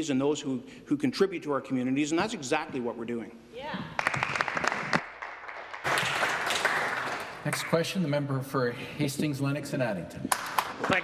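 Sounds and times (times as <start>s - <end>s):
applause: 4.0s - 7.8s.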